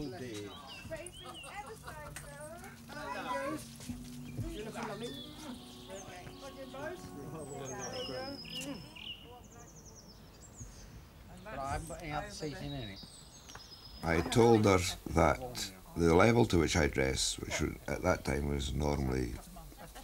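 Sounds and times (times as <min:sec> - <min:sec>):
bird chirps: 0:00.0 - 0:15.6
people chattering: 0:00.0 - 0:20.0
short high trill: 0:03.1 - 0:09.0.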